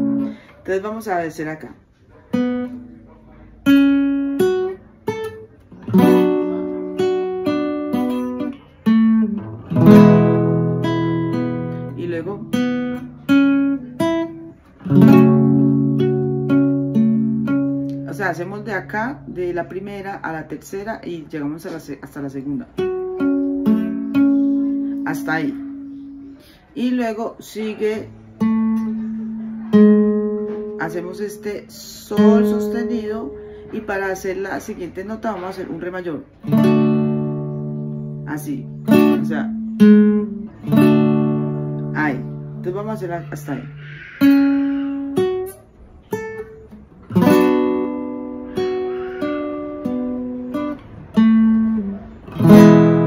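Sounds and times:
classical guitar playing: 0.0 - 53.0.

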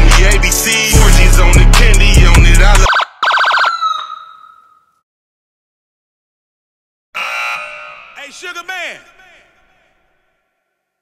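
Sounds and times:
electronic siren-like warble: 2.9 - 4.6.

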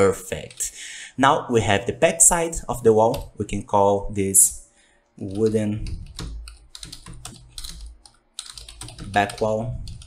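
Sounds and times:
typing on computer keyboard: 3.1 - 3.4, 5.3 - 10.0.

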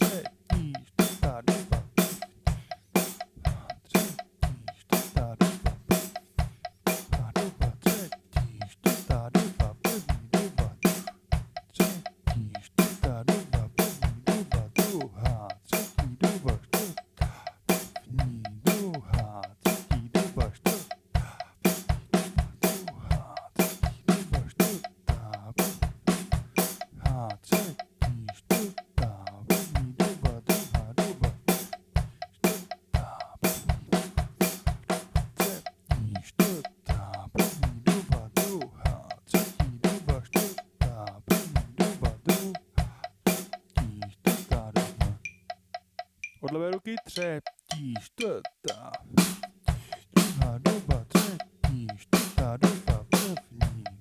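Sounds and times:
hi-hat: 0.0 - 45.6.

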